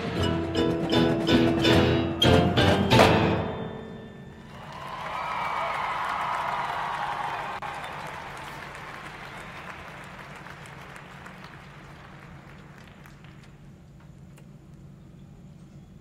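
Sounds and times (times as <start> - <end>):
audience applause: 4.5 - 13.7.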